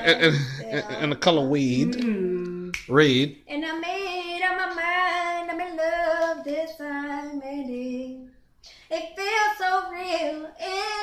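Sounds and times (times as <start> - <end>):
woman singing unaccompanied: 0.0 - 1.2, 1.8 - 2.8, 3.5 - 11.0.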